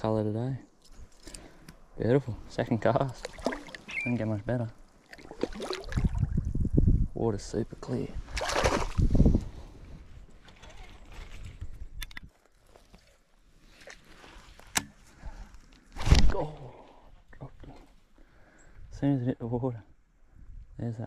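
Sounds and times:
lure splashing in water: 3.1s - 4.2s, 5.0s - 6.3s, 8.3s - 9.0s.

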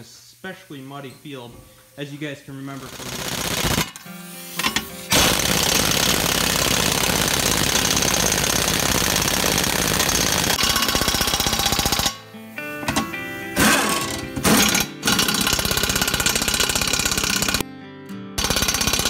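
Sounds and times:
music: 3.8s - 5.1s, 11.1s - 19.0s
impact wrench hammering: 4.6s - 12.2s, 12.8s - 17.6s, 18.4s - 19.0s.

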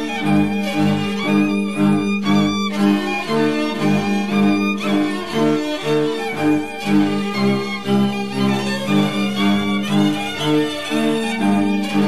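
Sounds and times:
fiddle melody: 0.0s - 12.0s
low bowed string accompaniment: 0.0s - 12.0s.

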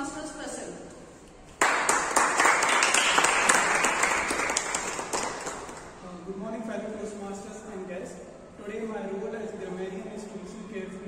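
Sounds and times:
group of people applauding: 1.6s - 6.0s.

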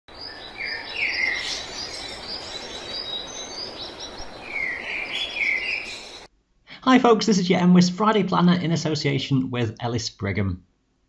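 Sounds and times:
birds chirping and whistling: 0.1s - 6.3s
outdoor background hiss: 0.1s - 11.0s.

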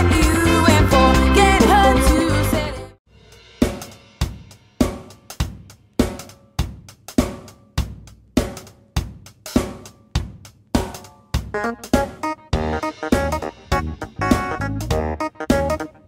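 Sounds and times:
full band playing: 0.0s - 2.9s, 11.5s - 16.0s
drum kit playing a groove: 0.0s - 16.0s.

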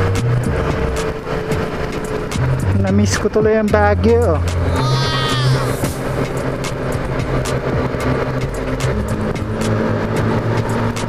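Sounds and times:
background music: 0.0s - 11.0s
motorcycle riding at low speed: 0.0s - 11.0s
short wavering voice-like sound: 4.6s - 6.0s.

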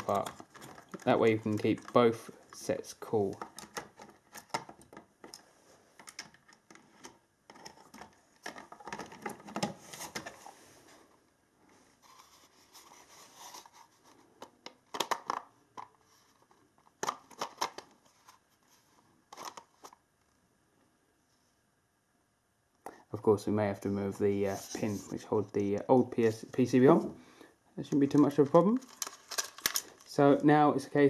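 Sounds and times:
plastic parts clicking and scraping: 0.0s - 10.5s, 12.0s - 20.0s, 27.8s - 30.2s.

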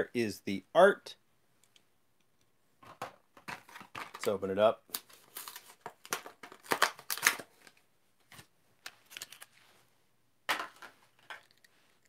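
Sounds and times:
plastic and cardboard crackling and tearing: 3.5s - 7.7s.

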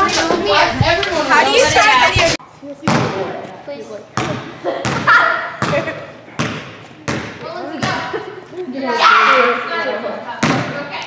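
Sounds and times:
basketball bouncing on gym floor: 2.8s - 3.3s, 4.2s - 8.1s, 10.4s - 10.8s.

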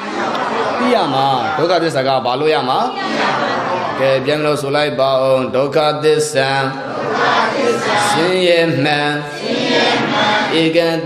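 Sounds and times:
man chanting: 8.0s - 9.4s, 10.5s - 11.0s.

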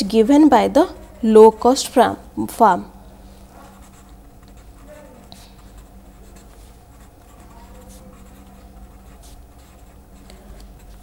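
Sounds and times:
marker scratching on paper: 0.0s - 2.3s, 3.2s - 11.0s
low steady hum: 0.0s - 11.0s.

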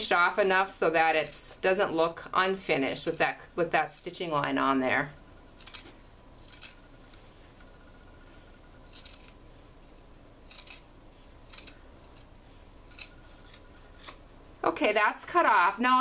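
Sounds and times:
scissors snipping fabric: 5.6s - 6.8s, 8.9s - 9.4s, 10.5s - 12.3s, 12.9s - 14.4s.

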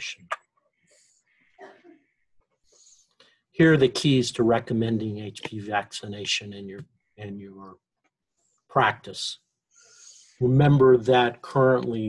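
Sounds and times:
soft breathing: 2.6s - 3.5s, 9.7s - 10.4s.

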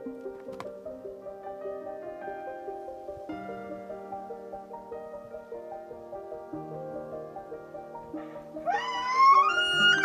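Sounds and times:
background music: 0.0s - 10.0s
elk bugling: 8.2s - 10.0s.

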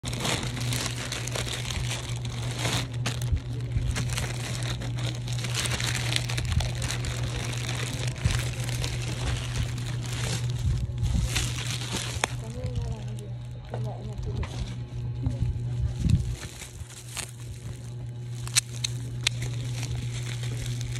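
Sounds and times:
plastic bag crinkling: 0.0s - 20.9s.

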